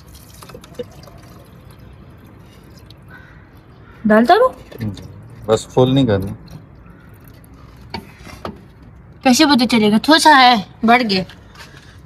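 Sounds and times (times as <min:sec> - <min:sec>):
water trickling from a jug: 0:00.0 - 0:03.8, 0:04.5 - 0:08.2.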